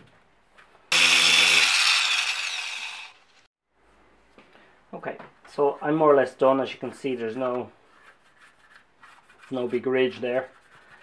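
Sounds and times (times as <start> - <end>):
handheld power tool whining: 0.9 - 3.5.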